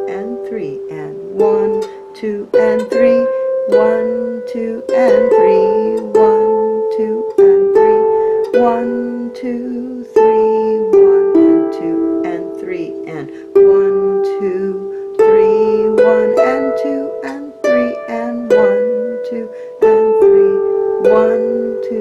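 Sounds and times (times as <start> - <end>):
harp playing waltz melody: 0.0 - 22.0.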